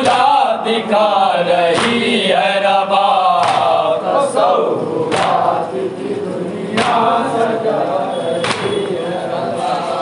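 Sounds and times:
men chanting a lament: 0.0 - 10.0.

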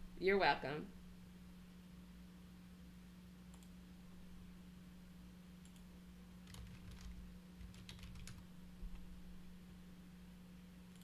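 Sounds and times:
low electrical hum: 0.0 - 11.0
faint computer clicks: 3.5 - 3.8.

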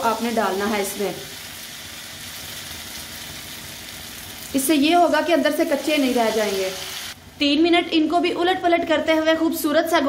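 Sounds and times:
oil sizzling in a pan: 0.0 - 7.3.

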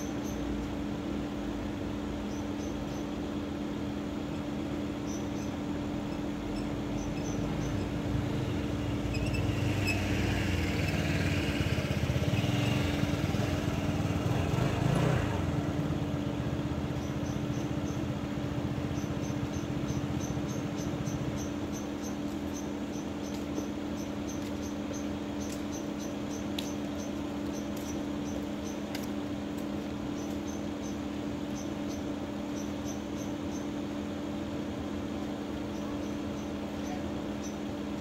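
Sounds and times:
crickets chirping: 0.0 - 14.6, 15.4 - 38.0
motor scooter idling: 0.0 - 38.0.

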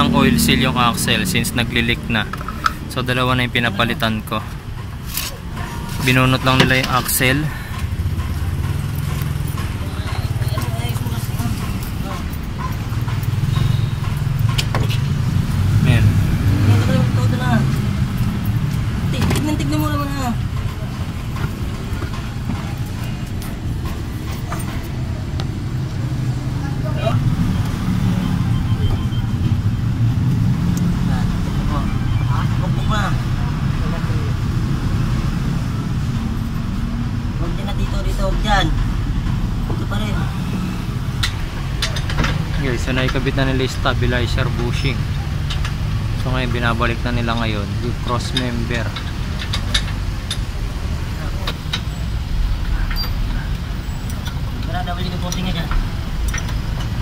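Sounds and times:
low rumble of vehicle noise: 0.0 - 57.0.

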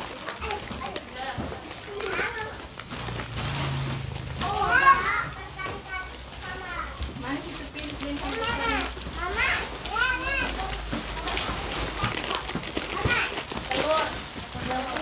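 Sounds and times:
plastic gift wrapping rustling: 0.0 - 15.0
young children chattering: 0.1 - 2.8, 4.3 - 14.2.

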